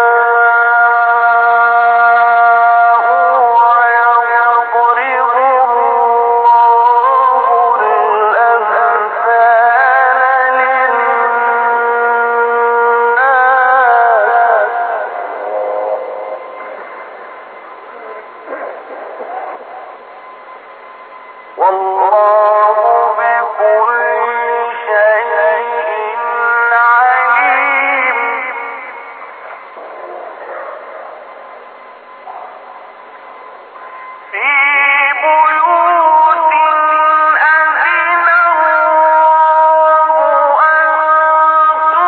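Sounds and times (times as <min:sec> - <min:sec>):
man reciting with held notes: 0:00.0 - 0:17.2, 0:17.9 - 0:20.0, 0:21.6 - 0:29.7, 0:34.3 - 0:42.0
faint voices: 0:14.5 - 0:20.5.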